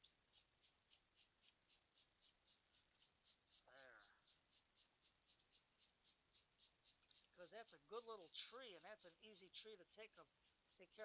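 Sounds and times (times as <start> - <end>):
spray bottle spraying: 0.0 - 11.0.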